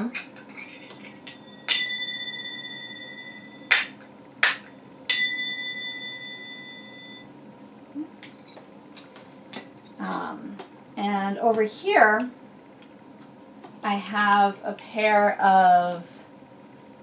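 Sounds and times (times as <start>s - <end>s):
finger cymbals ringing: 1.2s - 7.3s.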